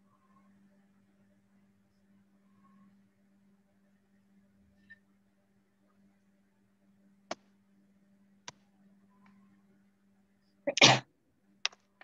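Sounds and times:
faint low hum: 0.0 - 12.0
person sneezing: 10.7 - 11.0.

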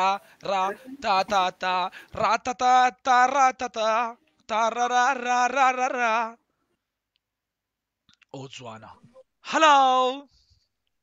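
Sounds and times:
person speaking: 0.0 - 1.6.

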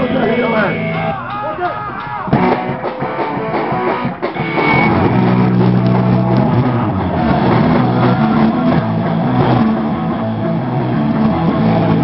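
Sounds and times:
punk rock band playing: 0.0 - 12.0.

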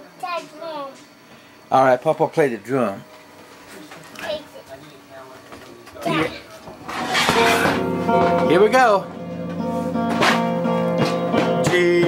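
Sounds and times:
guitar strum: 6.9 - 12.0.

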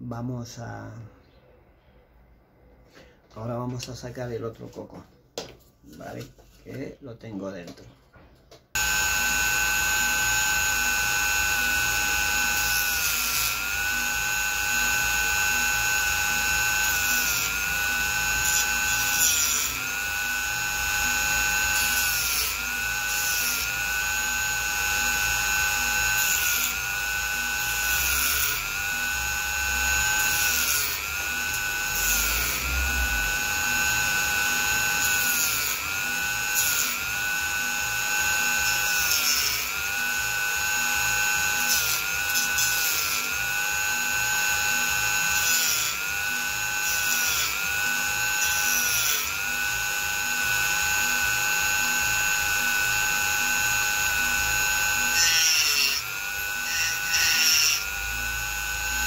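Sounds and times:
rotary tool cutting shell: 8.8 - 59.0.

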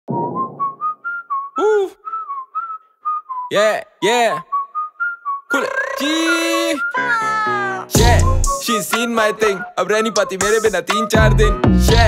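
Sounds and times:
whistled melody: 0.1 - 3.5, 4.4 - 12.0.

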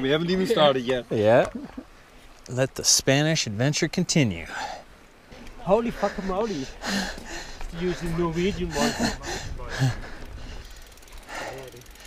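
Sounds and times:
bike rattling on rocky trail: 5.3 - 12.0
man laughing: 8.2 - 10.2.

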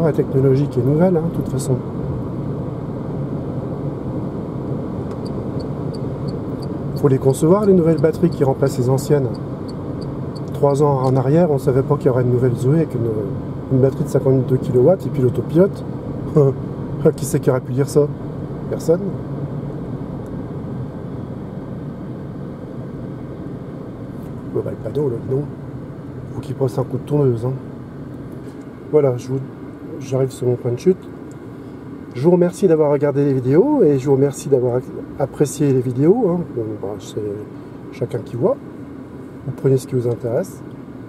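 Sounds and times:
road and tyre noise in car: 0.0 - 41.0
turn signal ticking: 5.1 - 8.5.

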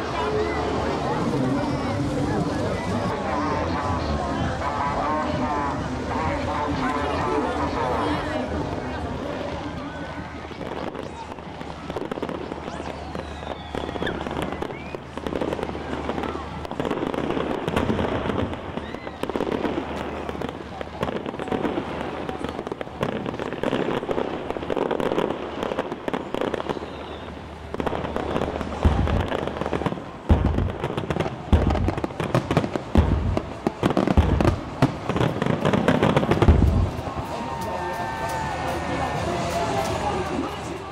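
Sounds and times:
fireworks crackling and bursting: 0.0 - 40.9
deep heavy firework booms: 10.6 - 37.2.

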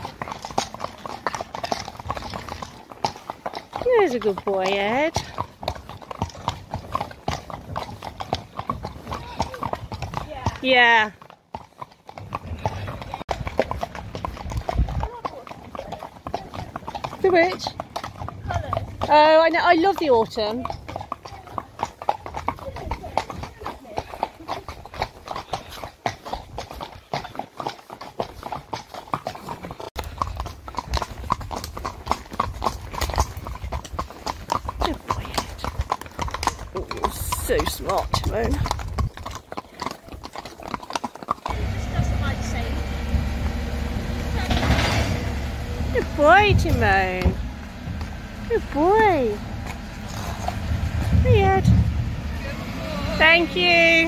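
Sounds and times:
horse hooves clip-clopping on tarmac: 0.0 - 54.0
low rumble: 41.6 - 52.8.

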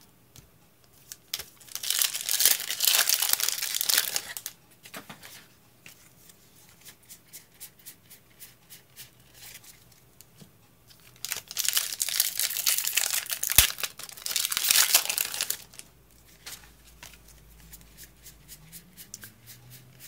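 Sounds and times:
foil wrapper tearing and crinkling: 1.3 - 4.5, 11.1 - 15.8.

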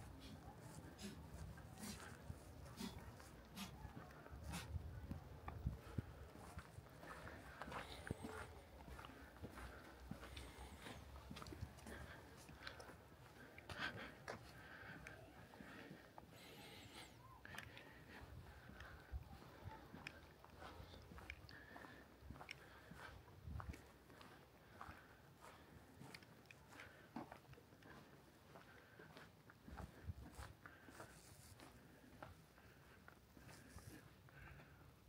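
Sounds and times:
faint distant voices: 0.0 - 35.0.

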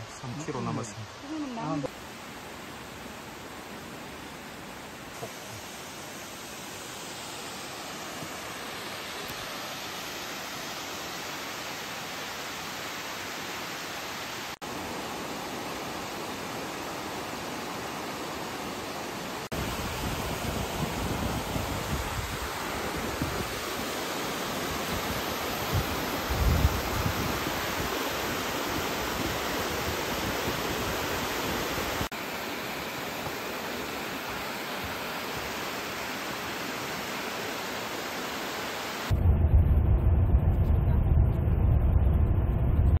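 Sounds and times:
stream cascading over rocks: 0.0 - 39.1
waterfall rushing: 0.0 - 39.1
deep uneven rumble: 39.1 - 43.0.

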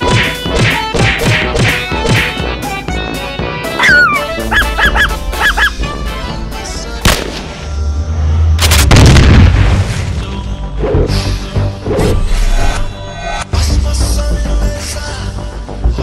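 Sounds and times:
background music: 0.0 - 16.0
sharp crack: 7.0 - 7.7
heavy low boom: 8.6 - 10.5.

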